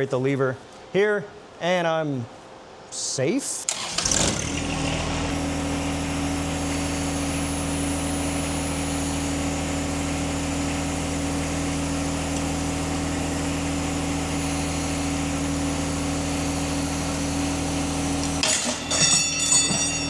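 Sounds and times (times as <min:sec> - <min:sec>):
tractor engine running: 0:03.8 - 0:20.0.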